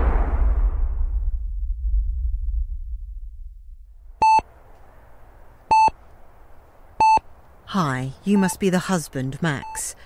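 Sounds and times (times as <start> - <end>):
heart monitor beeping: 4.2 - 4.4, 5.7 - 6.0, 7.0 - 7.2, 8.3 - 8.6, 9.5 - 9.9.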